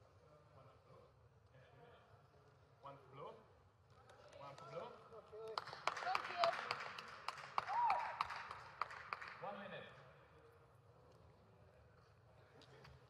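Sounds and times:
voices echoing in a hall: 0:00.0 - 0:13.0
scattered clapping: 0:04.0 - 0:09.6.

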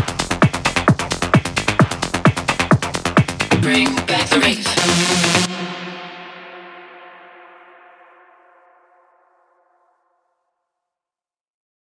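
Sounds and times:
synth chord ringing out: 0:03.6 - 0:10.0.

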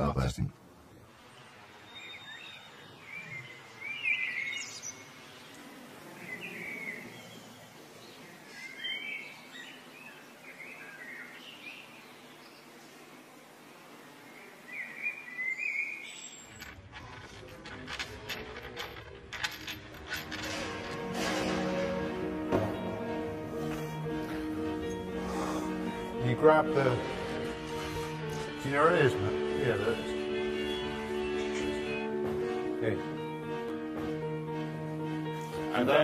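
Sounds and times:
background hiss: 0:00.0 - 0:36.0
faint bird chirps: 0:01.2 - 0:13.0, 0:14.2 - 0:16.6.

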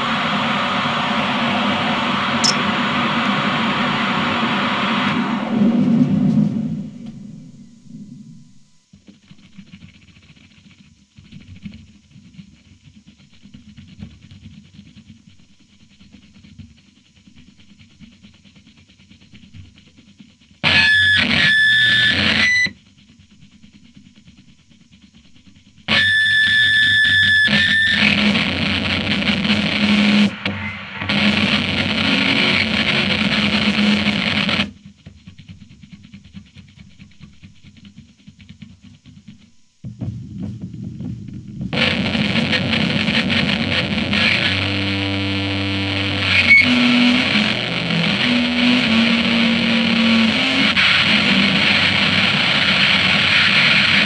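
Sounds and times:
bursts of distorted noise: 0:20.6 - 0:22.7, 0:25.9 - 0:34.7, 0:39.9 - 0:54.0
shrill steady tones: 0:20.7 - 0:22.7, 0:25.9 - 0:28.0.

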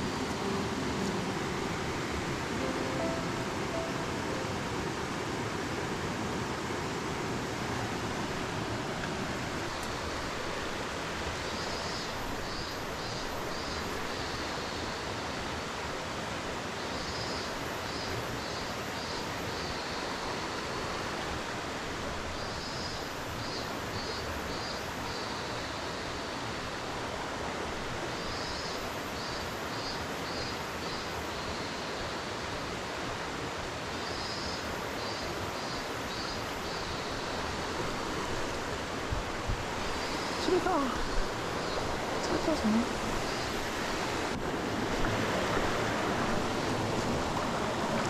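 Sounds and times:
high chirping call: 0:00.0 - 0:04.6
stream water flowing: 0:00.0 - 0:48.0.

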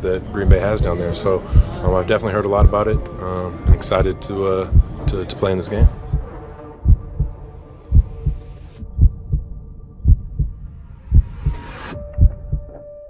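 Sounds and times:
heartbeat thumps: 0:00.0 - 0:12.8
steady low drone: 0:00.0 - 0:12.8
rising whoosh: 0:05.8 - 0:12.6.

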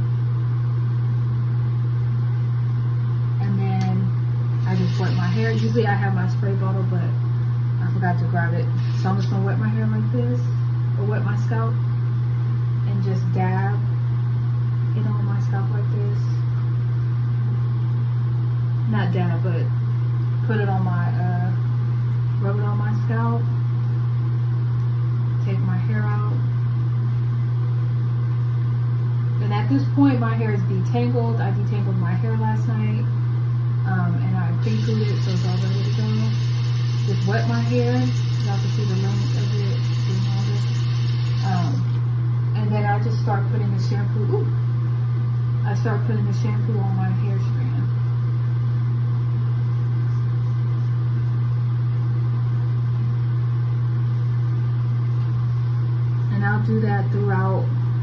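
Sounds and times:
exhaust fan humming: 0:00.0 - 0:58.0.

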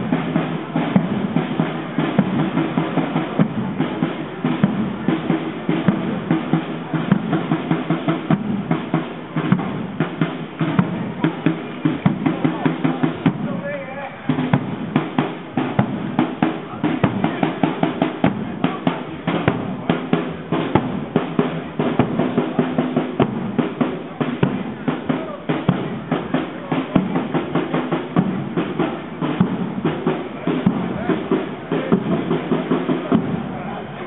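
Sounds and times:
bass drum and snare beat: 0:00.0 - 0:34.0
marching band playing: 0:00.0 - 0:34.0.

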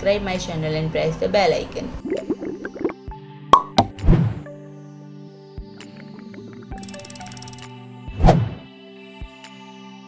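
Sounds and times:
sharp clicks: 0:06.8 - 0:07.7.

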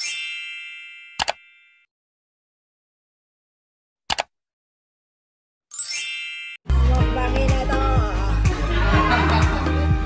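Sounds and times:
mouse double click: 0:04.1 - 0:04.3
bright sparkly chime: 0:05.7 - 0:06.6.

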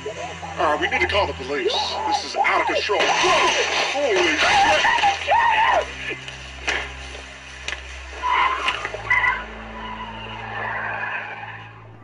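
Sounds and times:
car tyres squealing: 0:00.0 - 0:12.0.

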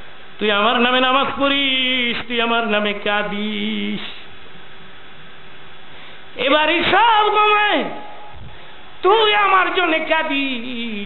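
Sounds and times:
faint hum: 0:00.0 - 0:11.0
steady hiss: 0:00.0 - 0:11.0.

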